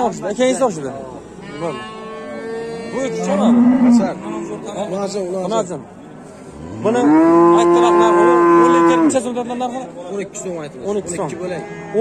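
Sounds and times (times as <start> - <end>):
cow mooing: 1.4 - 4.9, 6.6 - 9.2.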